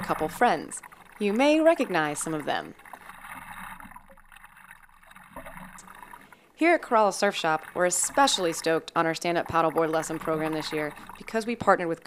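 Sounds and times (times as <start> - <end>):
paddle strokes in water: 0.0 - 11.8
water lapping at board: 0.0 - 12.0.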